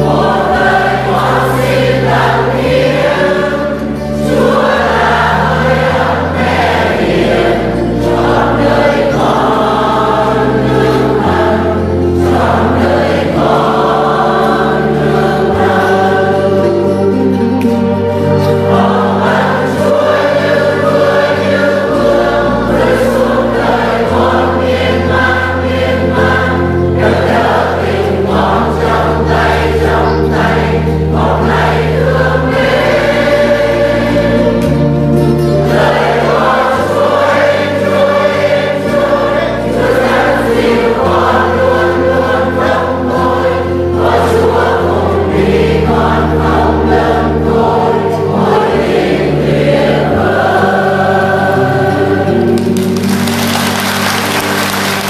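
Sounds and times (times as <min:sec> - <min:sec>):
choir singing a hymn: 0:00.0 - 0:55.0
instrumental accompaniment: 0:00.0 - 0:55.0.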